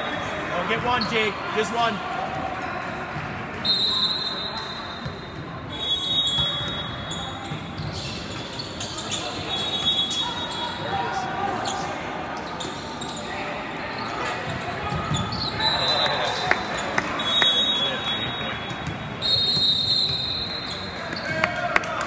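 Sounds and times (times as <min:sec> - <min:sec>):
voices echoing in hall: 0:00.0 - 0:22.0
shoes squeaking on court: 0:04.5 - 0:10.9, 0:11.6 - 0:19.2.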